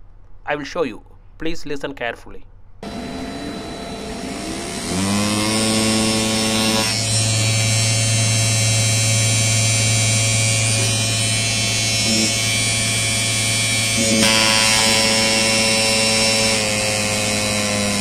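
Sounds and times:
electric motor hum and whine: 2.8s - 18.0s.

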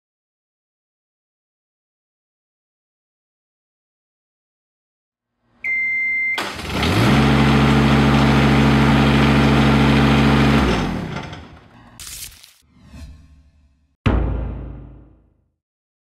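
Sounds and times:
engine cranking and running: 6.4s - 12.0s.

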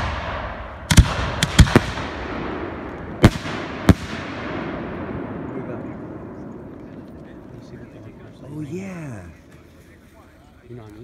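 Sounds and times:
rolling echo: 0.0s - 8.5s.

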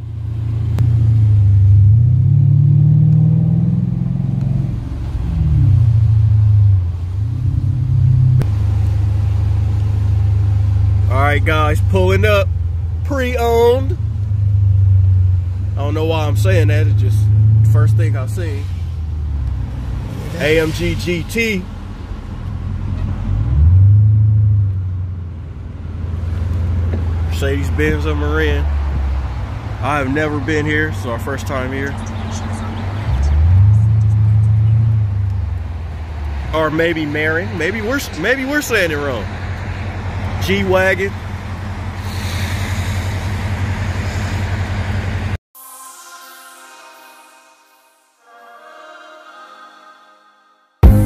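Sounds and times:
car engine and road noise: 0.0s - 45.4s
faint electronic music: 45.6s - 50.2s.

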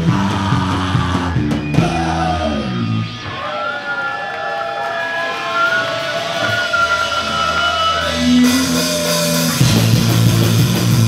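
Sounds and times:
live punk band playing: 0.0s - 11.0s
distorted guitar notes ringing: 0.9s - 3.5s, 6.0s - 11.0s.

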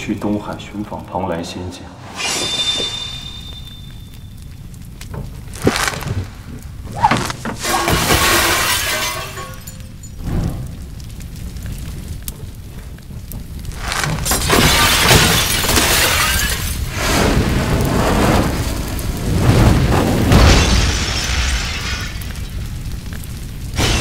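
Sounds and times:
breaking and burning fire: 2.0s - 24.0s
crash and scattering debris: 3.5s - 24.0s.

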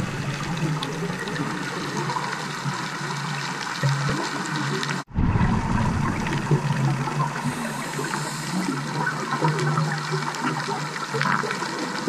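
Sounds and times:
diver's bubbles gurgling: 0.0s - 12.0s.

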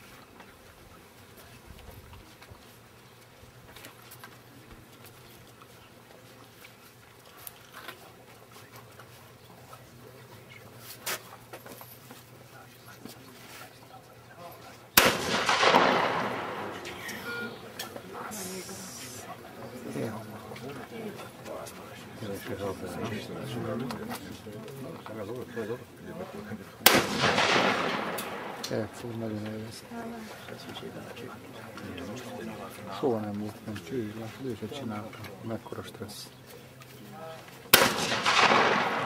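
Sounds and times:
voices: 7.9s - 39.0s
shotgun shot: 15.0s - 17.2s, 26.8s - 28.9s, 37.7s - 39.0s
people talking: 16.2s - 27.0s, 28.6s - 36.3s.

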